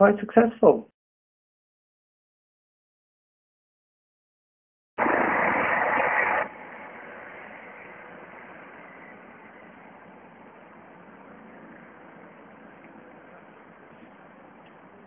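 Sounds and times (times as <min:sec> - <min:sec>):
loud burst of noise: 0:05.0 - 0:11.0
outdoor background noise: 0:05.0 - 0:15.0.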